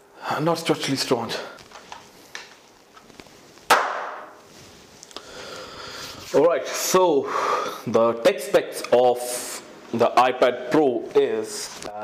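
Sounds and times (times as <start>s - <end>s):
sharp bang: 3.7s - 4.3s.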